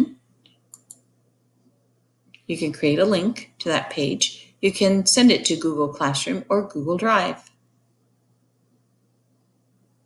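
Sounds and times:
faint low hum: 0.0 - 10.0
computer mouse clicks: 0.4 - 1.1.

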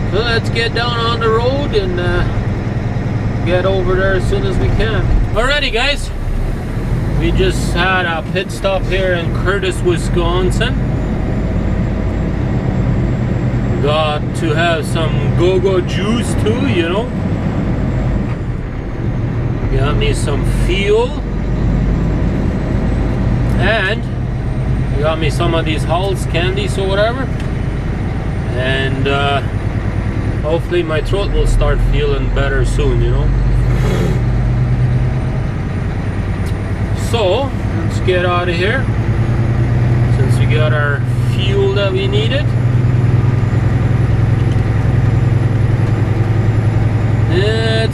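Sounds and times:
man talking: 0.0 - 2.4, 3.4 - 6.2, 7.2 - 10.8, 13.8 - 17.2, 19.7 - 21.3, 23.5 - 24.1, 24.9 - 27.4, 28.5 - 29.5, 30.4 - 34.2, 37.0 - 38.9, 40.1 - 42.6, 47.3 - 47.9
diesel truck engine rumbling: 0.0 - 47.9.

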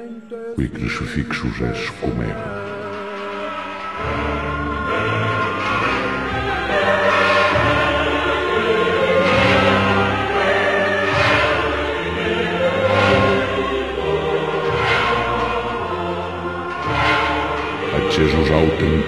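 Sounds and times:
choir singing held chords: 0.0 - 19.0.

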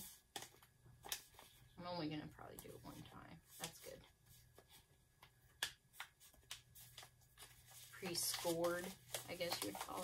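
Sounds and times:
paper bag crinkling: 7.0 - 10.0.

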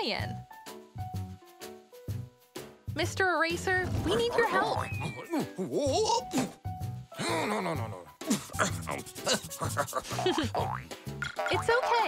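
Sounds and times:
playful children's music: 0.0 - 12.0
eraser rubbing: 8.8 - 10.2.

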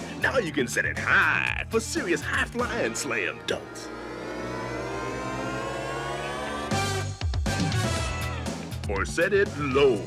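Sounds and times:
buzzy tone gliding upward: 3.4 - 7.1.

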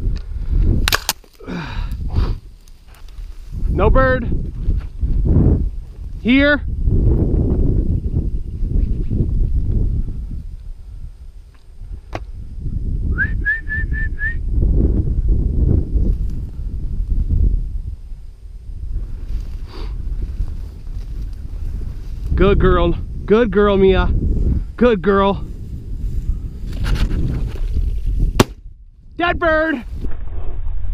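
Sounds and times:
wind on microphone: 0.0 - 30.9
footsteps through dry grass: 2.1 - 6.3, 15.9 - 22.4
short whistled notes: 13.1 - 14.4.

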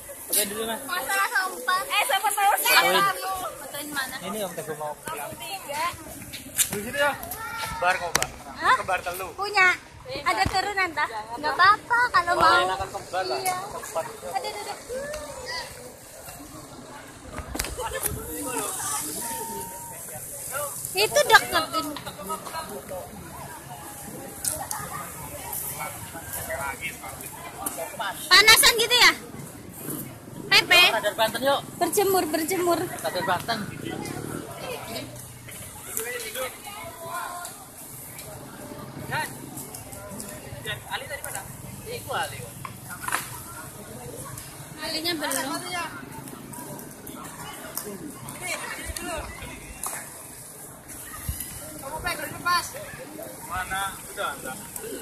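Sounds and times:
people chattering outdoors: 0.0 - 55.0.

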